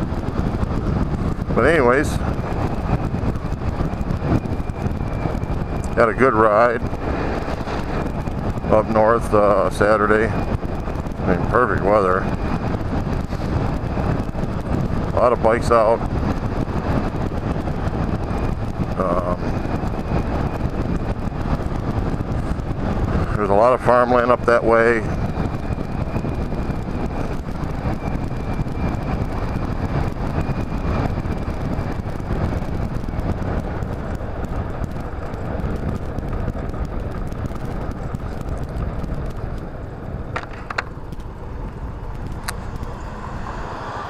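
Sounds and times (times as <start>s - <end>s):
scooter engine and road noise: 0.0s - 44.0s
wind buffeting microphone: 0.0s - 44.0s
scooter engine: 31.0s - 44.0s.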